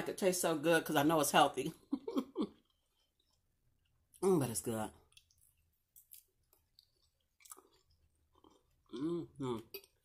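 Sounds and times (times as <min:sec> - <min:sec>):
chewing salad crunching: 0:05.0 - 0:10.0.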